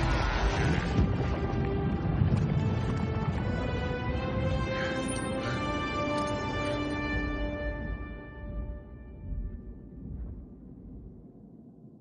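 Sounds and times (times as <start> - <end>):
orchestral music: 0.0 - 9.2.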